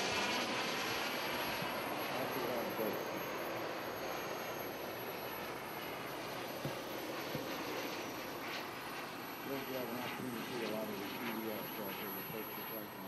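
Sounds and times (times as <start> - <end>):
model jet flying past: 0.0 - 13.0
voices talking: 2.1 - 3.2, 9.4 - 13.0.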